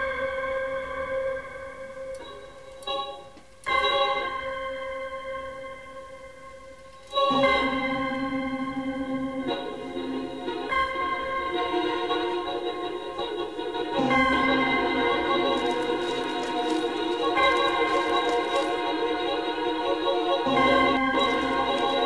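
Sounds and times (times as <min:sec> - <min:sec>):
organ-like synthesizer chords: 0:06.6 - 0:22.0.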